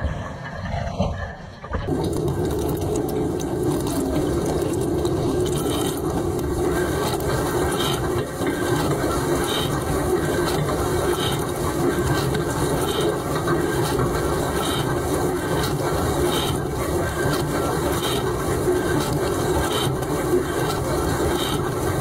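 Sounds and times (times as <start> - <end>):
dishwasher water spraying: 1.9 - 22.0.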